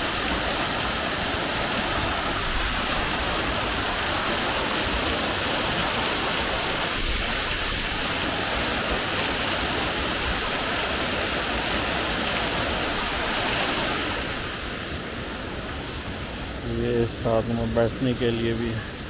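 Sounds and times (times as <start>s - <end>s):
waterfall rushing onto rocks: 0.0s - 19.0s.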